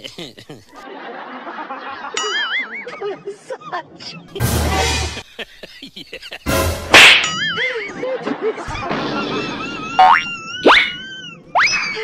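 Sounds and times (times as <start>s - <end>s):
wobbling boing: 10.0s - 10.9s.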